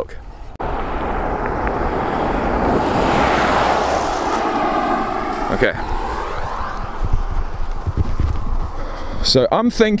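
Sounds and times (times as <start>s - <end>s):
car passing by: 0.6s - 9.4s.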